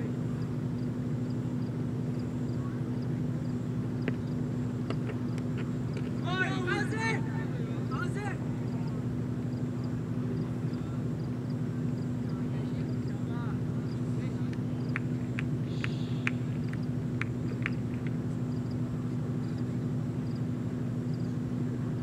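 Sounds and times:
low hum: 0.0s - 22.0s
fielders shouting an appeal: 6.2s - 16.8s.

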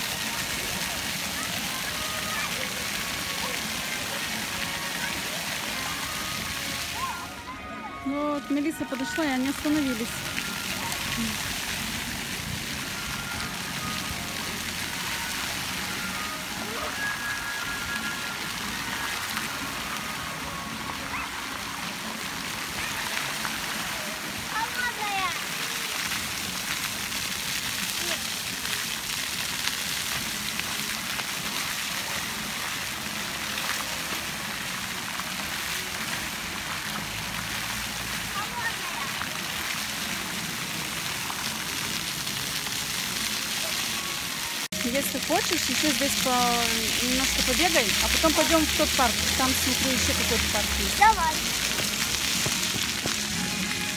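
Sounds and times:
fountain water splashing: 0.0s - 53.9s
people talking in background: 0.0s - 53.9s.

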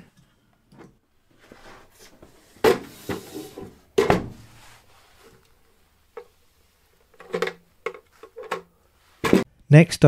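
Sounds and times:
plastic bin knocks and clatters: 9.2s - 9.4s.

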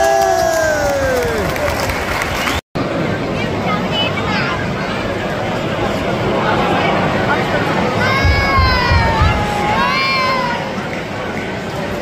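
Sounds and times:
murmur of crowd: 1.4s - 12.0s
spectator shouting: 8.0s - 10.8s.

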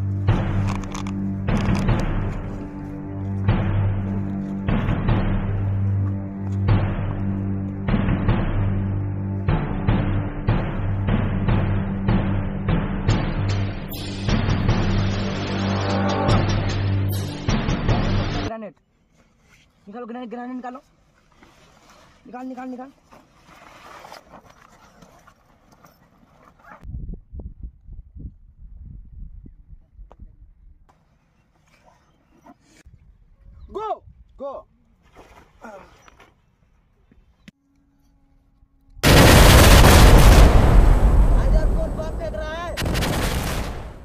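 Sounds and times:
feet moving over dry grass: 0.0s - 7.8s
low thumps: 0.0s - 18.5s
rumbling gunfire blast: 3.4s - 5.7s, 7.8s - 15.5s, 39.0s - 44.0s
sharp gunshot: 39.0s - 44.0s.

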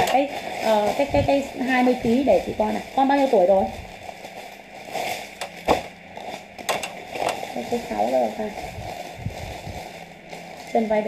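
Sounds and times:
stiff fabric rustling: 0.0s - 11.0s.

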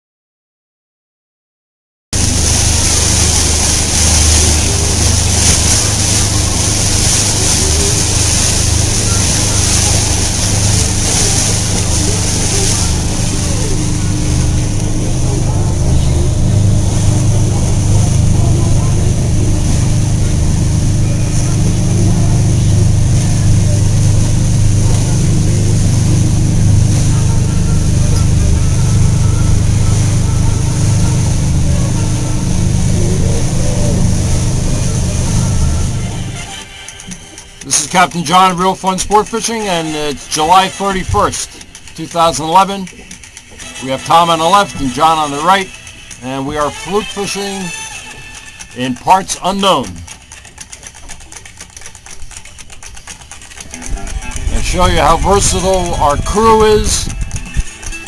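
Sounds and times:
wind and water rushing: 2.2s - 36.8s, 37.6s - 50.0s, 54.0s - 58.0s
motorboat engine drone: 2.2s - 58.0s.

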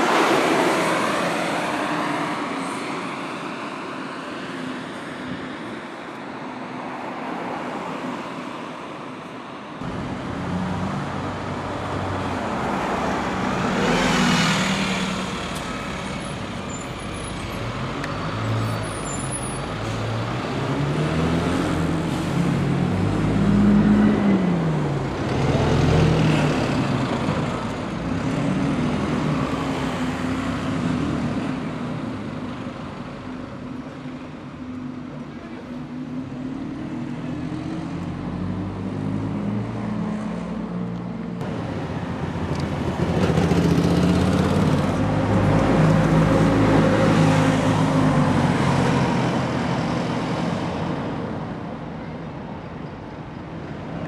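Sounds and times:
general traffic noise: 0.0s - 54.0s
diesel buses pulling away: 9.9s - 33.5s, 41.4s - 51.6s.

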